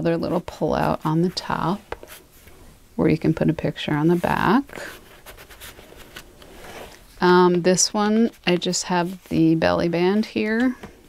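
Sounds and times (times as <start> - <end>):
paper and cardstock rustling: 3.8 - 7.2.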